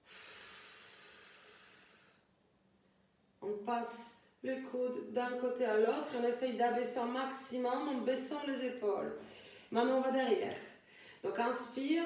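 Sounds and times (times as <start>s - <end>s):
woman exhaling breathily: 0.0s - 2.2s.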